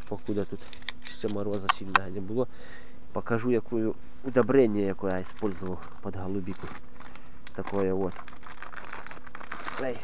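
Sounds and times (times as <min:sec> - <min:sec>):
rustling and crackling handling noise: 0:00.0 - 0:02.2, 0:04.2 - 0:10.0
faint steady hum: 0:00.0 - 0:10.0
noisy hiss: 0:00.0 - 0:10.0.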